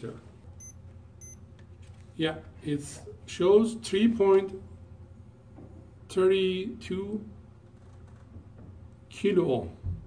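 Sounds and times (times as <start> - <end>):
faint low hum: 0.0 - 10.0
high-pitched electronic beeps: 0.6 - 1.4.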